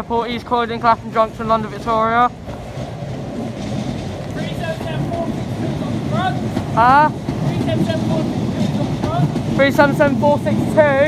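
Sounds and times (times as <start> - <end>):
train wheels rumbling: 0.0 - 11.0.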